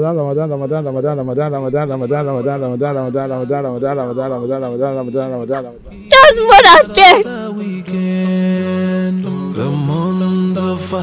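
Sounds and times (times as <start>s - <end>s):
voice chanting held notes: 6.1s - 7.3s.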